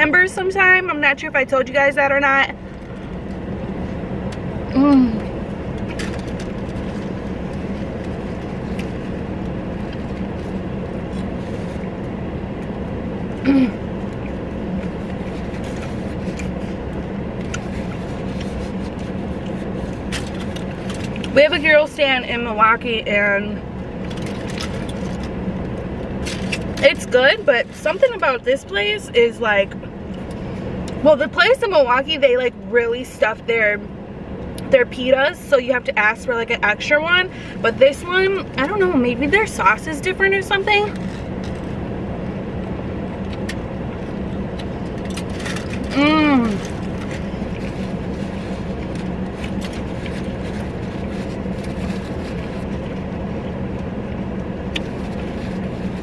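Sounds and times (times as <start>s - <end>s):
woman speaking: 0.0s - 2.6s, 21.3s - 23.6s, 26.8s - 29.8s, 31.0s - 33.9s, 34.7s - 41.0s, 45.9s - 46.7s
car engine idling: 0.0s - 56.0s
person humming mmm: 4.7s - 5.3s, 13.4s - 13.8s.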